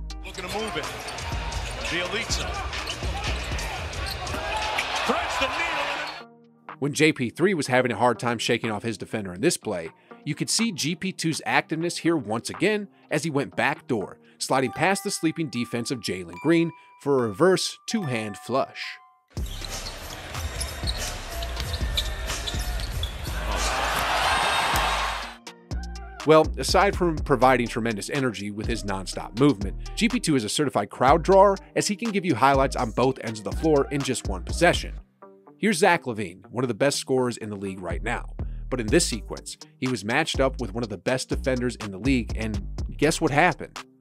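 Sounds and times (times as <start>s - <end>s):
sneaker squeaks: 0.3s - 5.1s, 19.4s - 24.6s
arena crowd noise: 0.3s - 6.2s, 20.1s - 25.4s.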